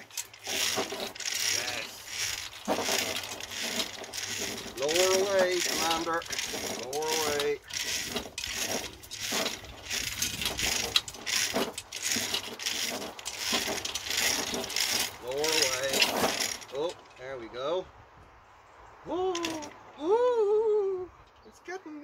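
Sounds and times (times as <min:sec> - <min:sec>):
metal chain rattling: 0:00.0 - 0:17.3.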